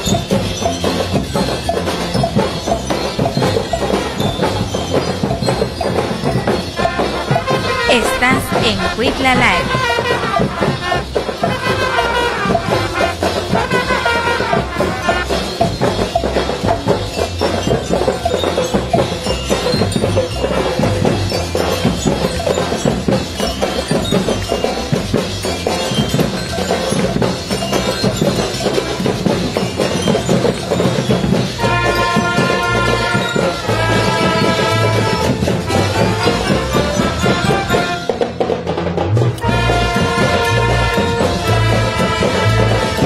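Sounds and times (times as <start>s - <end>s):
marching band playing: 0.0s - 43.0s
snare and bass drums beat: 0.0s - 43.0s
trumpets playing: 6.8s - 15.6s, 31.6s - 38.3s, 39.4s - 43.0s.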